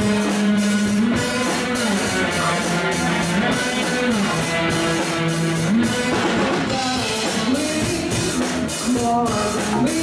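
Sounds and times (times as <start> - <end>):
drum kit beat: 0.0 - 10.0
electric guitar: 0.0 - 10.0.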